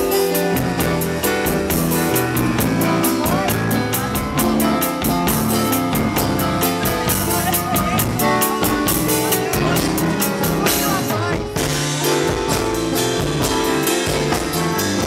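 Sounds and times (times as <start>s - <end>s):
drum kit beat: 0.0s - 15.0s
live band music: 0.0s - 15.0s.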